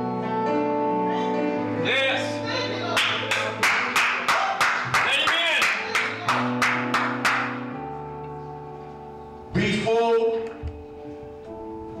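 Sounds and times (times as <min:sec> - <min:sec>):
keyboard sustained chords: 0:00.0 - 0:12.0
sharp claps or drum hits: 0:03.0 - 0:07.6
person preaching: 0:09.6 - 0:10.6.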